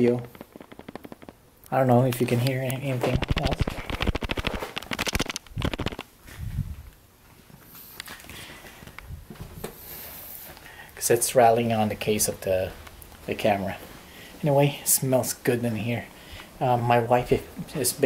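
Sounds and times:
loose part rattling in camera: 0:00.0 - 0:06.1.

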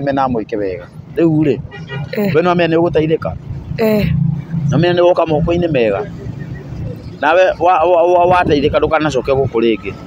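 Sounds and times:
traffic hum: 0:00.0 - 0:10.0
person speaking: 0:02.1 - 0:02.6, 0:03.8 - 0:04.2.

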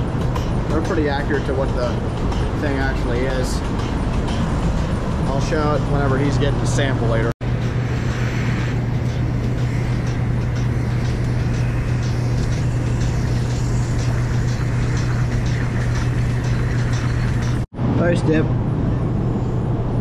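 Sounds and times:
milking vacuum system humming: 0:04.7 - 0:17.7
hiss: 0:07.7 - 0:10.0.

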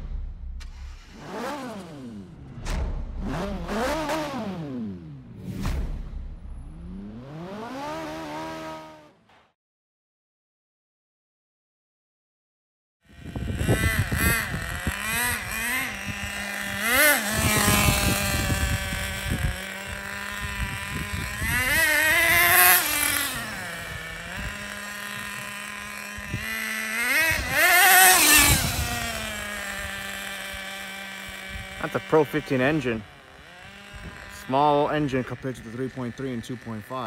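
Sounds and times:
model engine idling and revving: 0:00.0 - 0:09.3, 0:13.0 - 0:37.0.

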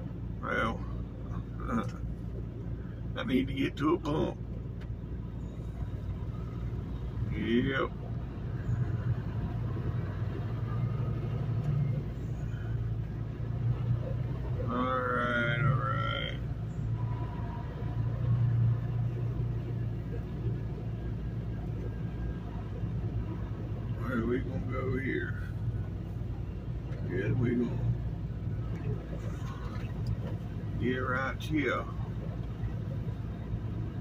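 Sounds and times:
truck engine hum: 0:00.0 - 0:34.0
man's voice: 0:27.0 - 0:27.9, 0:30.8 - 0:32.0.

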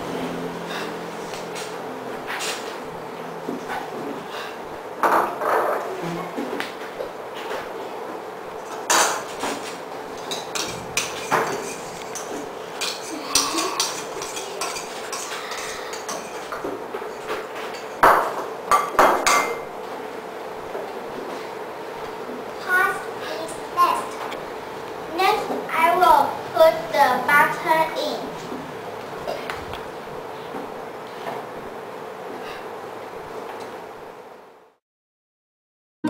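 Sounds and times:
spoon and bowls clinking on glass: 0:10.2 - 0:16.6.

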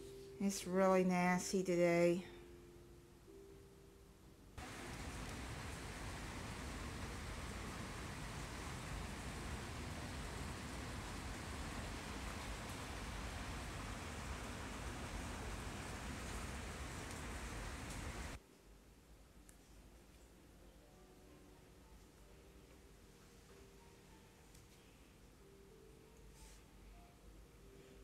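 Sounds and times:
steady rain falling: 0:04.6 - 0:18.4.

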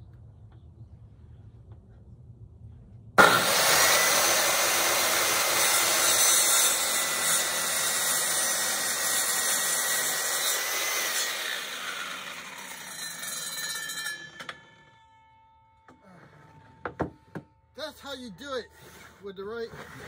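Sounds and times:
circular saw cutting wood: 0:03.2 - 0:14.9.

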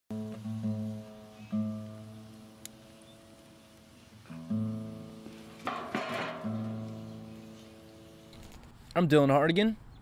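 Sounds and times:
acoustic guitar chord ringing: 0:00.1 - 0:03.6, 0:04.2 - 0:08.3.

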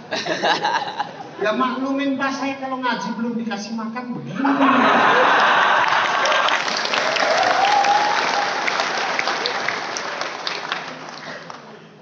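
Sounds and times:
audience applauding: 0:05.1 - 0:11.8.

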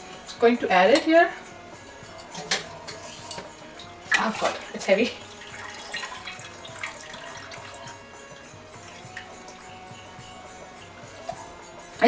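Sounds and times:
soft background music: 0:00.0 - 0:12.0
liquid trickling and dripping: 0:02.9 - 0:10.1.

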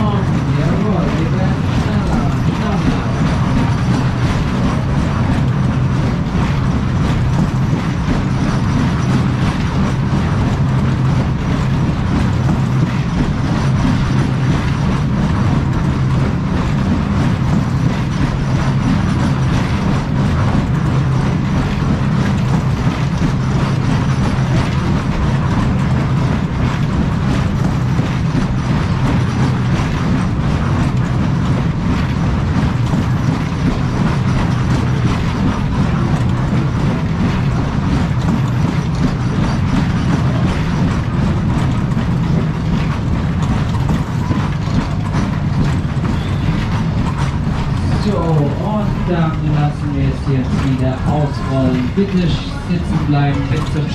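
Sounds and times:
ride cars rumbling and rattling: 0:00.0 - 0:53.9.

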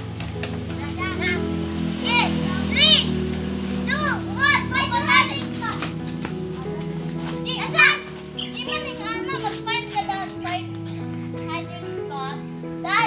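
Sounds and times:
background music of held notes: 0:00.0 - 0:13.0
children shouting and crying out: 0:00.4 - 0:13.0.

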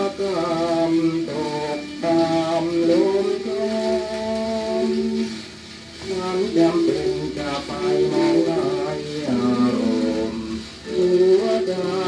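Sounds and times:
old song on a record: 0:00.0 - 0:12.0
record surface hiss: 0:00.0 - 0:12.0.

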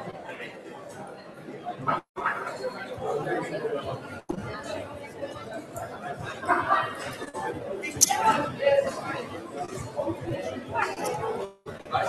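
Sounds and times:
chatter of many voices echoing: 0:00.0 - 0:12.0
faint music: 0:00.0 - 0:12.0.

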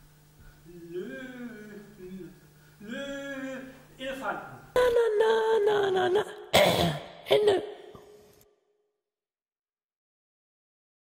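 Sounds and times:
person vocalising vowels: 0:00.6 - 0:08.1
harsh throat-clearing rasp: 0:00.7 - 0:03.9, 0:06.5 - 0:08.1.

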